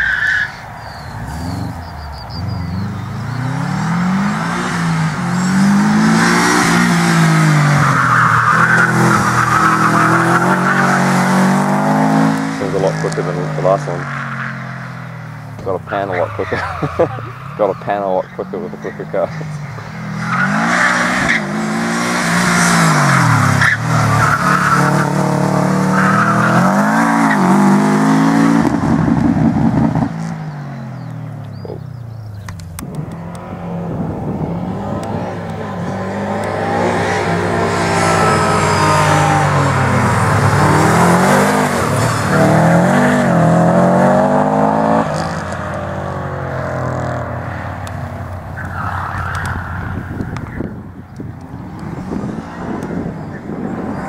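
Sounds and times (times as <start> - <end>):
car engine revving hard: 1.1 - 15.0, 15.6 - 31.0, 32.7 - 47.7
tyres squealing: 7.6 - 14.8, 15.6 - 21.6, 22.3 - 27.6.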